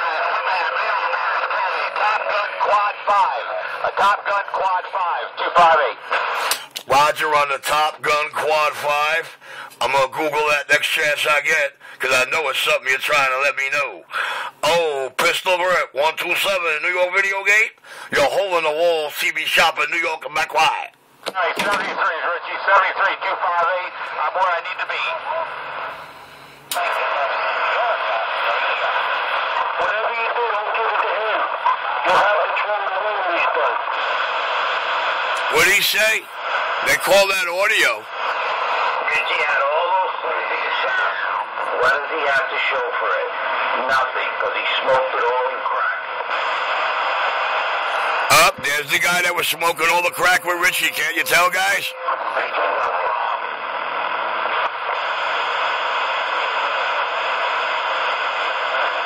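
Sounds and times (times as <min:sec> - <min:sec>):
tinny voice over radio: 0:00.0 - 0:14.0, 0:14.6 - 0:26.0, 0:26.7 - 0:34.2, 0:35.3 - 0:46.6, 0:47.8 - 0:53.8.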